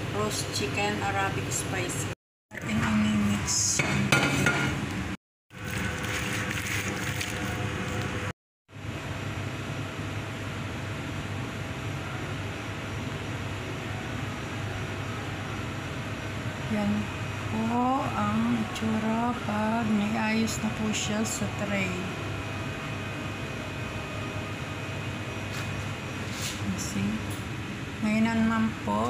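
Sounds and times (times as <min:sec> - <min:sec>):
steady background hum: 0:00.0 - 0:29.0.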